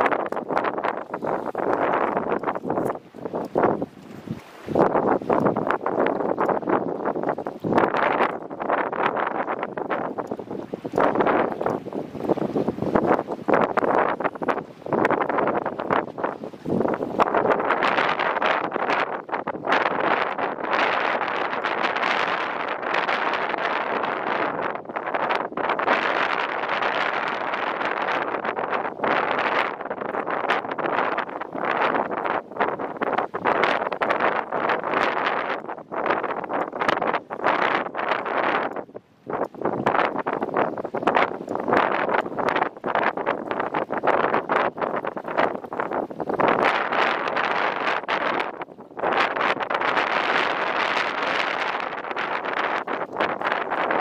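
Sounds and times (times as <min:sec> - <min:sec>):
gusty wind buffeting microphone: 0:00.0 - 0:54.0.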